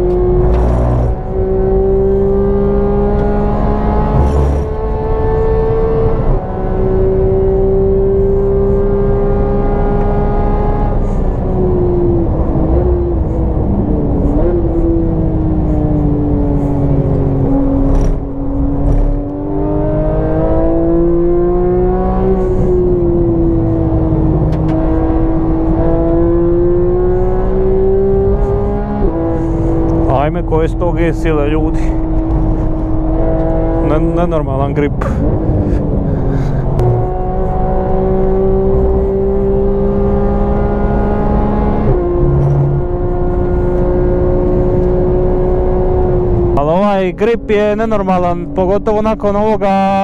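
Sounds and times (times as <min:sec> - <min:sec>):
car engine under hard driving: 0:00.0 - 0:50.0.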